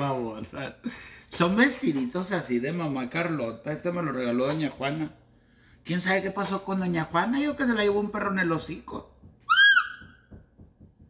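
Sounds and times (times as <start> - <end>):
high whistle-like squeak: 9.5 - 10.1.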